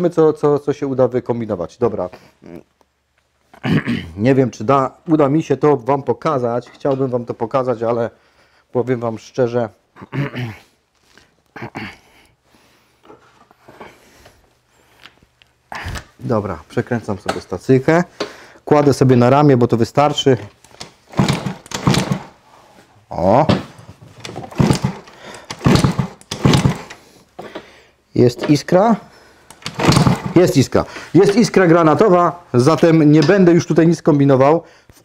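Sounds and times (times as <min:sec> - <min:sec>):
hands rustling behind plastic panels: 0:20.0 - 0:33.8
scooter kick-starter thunks: 0:20.8 - 0:22.3, 0:23.4 - 0:27.6, 0:29.6 - 0:30.5.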